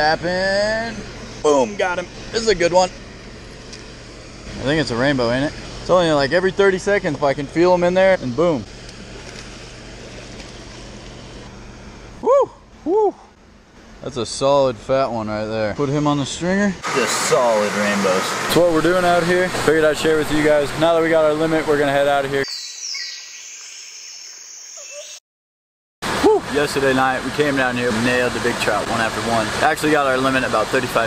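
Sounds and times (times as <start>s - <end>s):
high-pitched chirring hiss: 0.0s - 8.7s, 22.4s - 25.2s
person whooping: 12.2s - 13.3s, 26.2s - 26.5s
water rushing through spillway: 16.8s - 22.4s, 26.0s - 31.0s.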